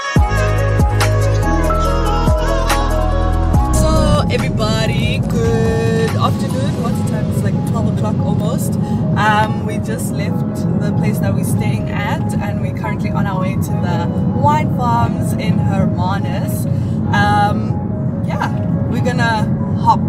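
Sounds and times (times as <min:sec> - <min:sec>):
music: 0:00.0 - 0:20.0
car road and engine noise: 0:02.6 - 0:20.0
voices: 0:03.7 - 0:08.6.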